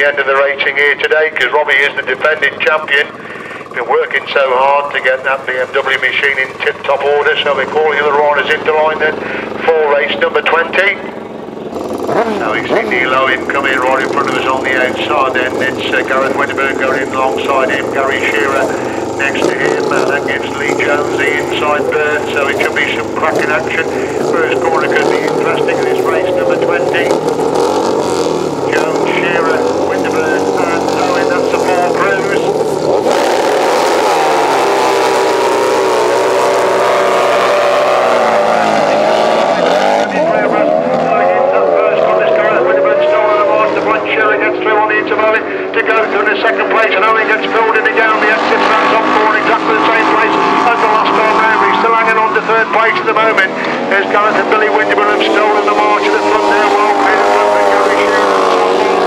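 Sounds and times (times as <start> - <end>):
racing engines revving hard: 0.0 - 59.0.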